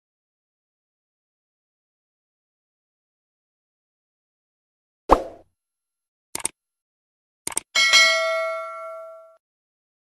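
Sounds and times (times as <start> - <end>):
bright bell ding: 7.8 - 9.4.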